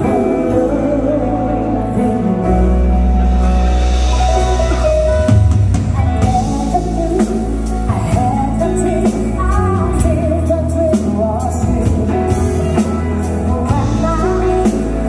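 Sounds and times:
woman singing: 0.0 - 3.2, 5.8 - 15.0
live pop-rock band: 0.0 - 15.0.

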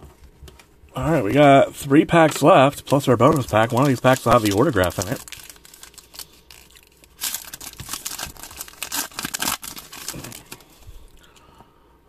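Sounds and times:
foil wrapper crinkling and tearing: 2.8 - 11.2.

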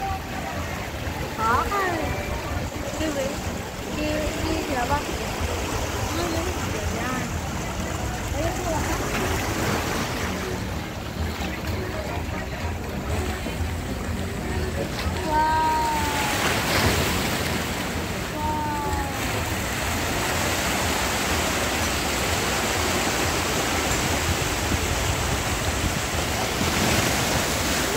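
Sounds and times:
sea water lapping against rocks: 14.9 - 27.9.

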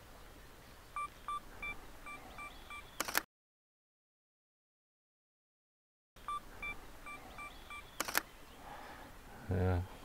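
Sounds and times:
camera shutter click: 3.0 - 3.3, 8.0 - 8.3
short electronic beeps: 6.2 - 8.1.

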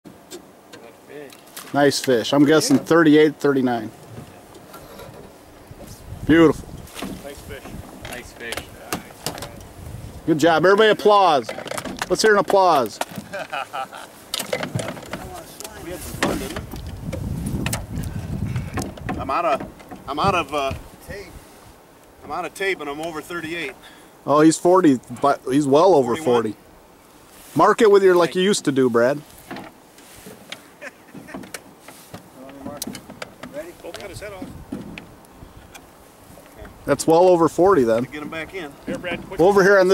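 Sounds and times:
faint wind on microphone: 3.7 - 12.2, 14.1 - 28.0, 28.8 - 39.9
clicks and knocks in metal boat: 11.0 - 13.3, 14.3 - 15.4, 31.1 - 33.6.

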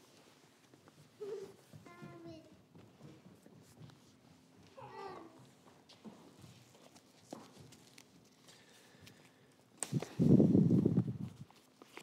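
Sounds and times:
people shuffling and knocking: 0.0 - 12.0
toddler crying: 4.8 - 5.5.

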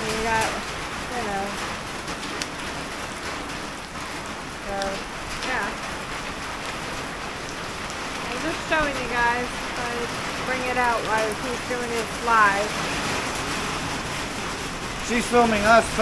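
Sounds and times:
heavy rain on pavement: 0.0 - 16.0.

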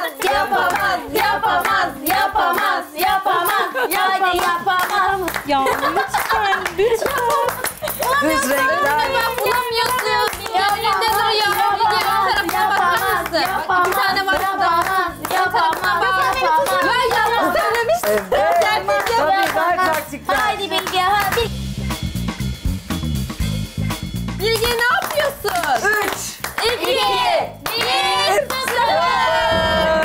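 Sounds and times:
women chanting and singing: 0.0 - 21.5, 26.6 - 30.0
background music: 0.0 - 30.0
rhythmic hand clapping: 0.0 - 30.0.

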